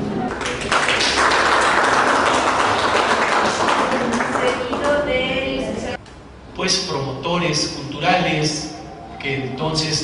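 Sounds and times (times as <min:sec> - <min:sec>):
people applauding: 0:00.2 - 0:05.0.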